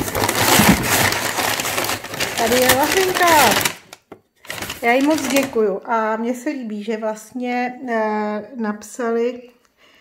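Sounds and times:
packing paper rustling and crinkling: 0.0s - 5.6s.

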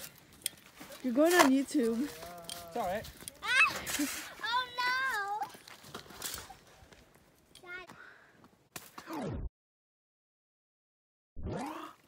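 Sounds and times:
scuffing and rustling: 0.0s - 7.1s.

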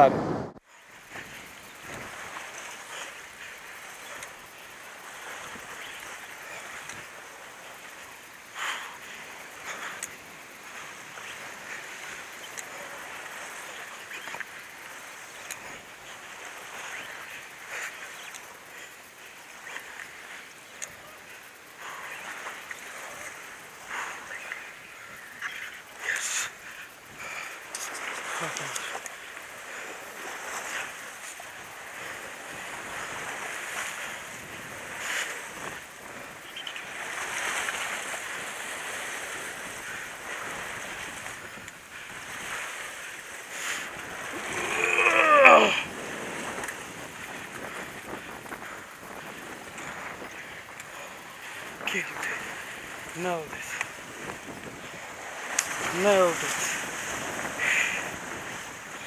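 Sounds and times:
wind on microphone: 0.0s - 18.8s, 19.4s - 59.0s
surf on rocky shore: 0.0s - 59.0s
person shouting: 44.5s - 45.9s.

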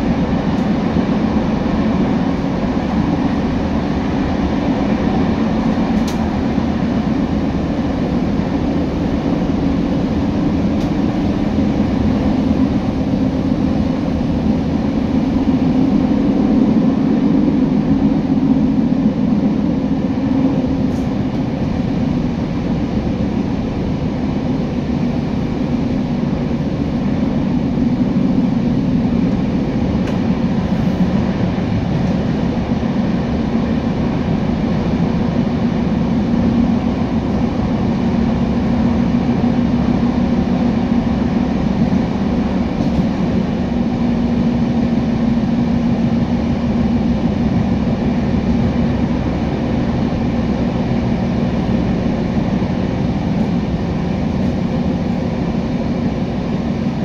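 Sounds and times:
train wheels rumbling: 0.0s - 57.0s.

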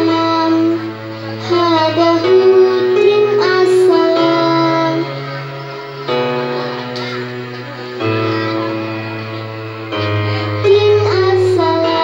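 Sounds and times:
girl singing into a microphone: 0.0s - 5.4s, 10.0s - 12.0s
backing music track: 0.0s - 12.0s.

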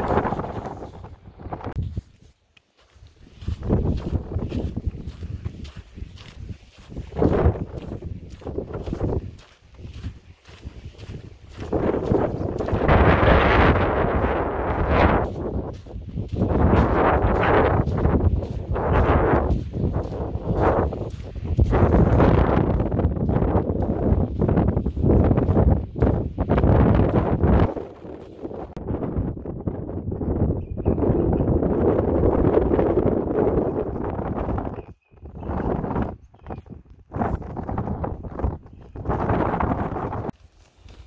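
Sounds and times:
footsteps on sand: 0.0s - 28.8s, 35.0s - 41.0s
wind buffeting microphone: 0.0s - 41.0s.

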